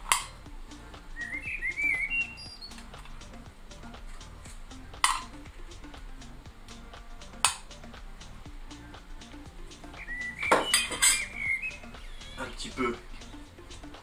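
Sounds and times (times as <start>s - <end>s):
metal utensil clinking on bowl: 10.5s - 11.2s.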